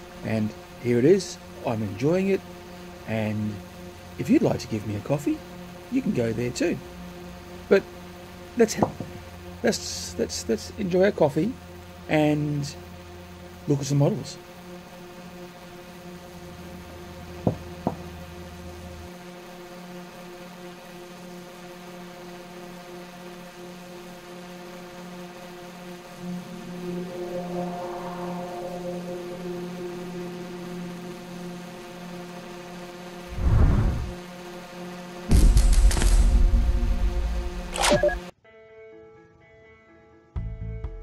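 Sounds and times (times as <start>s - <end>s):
droning background music: 0.0s - 33.4s, 34.1s - 41.0s
short clicks: 37.7s - 38.3s.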